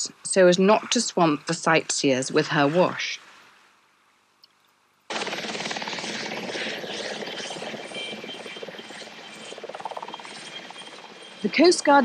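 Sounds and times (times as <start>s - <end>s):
faint high whine: 5.1s - 12.0s
helicopter rotor chop: 5.1s - 12.0s.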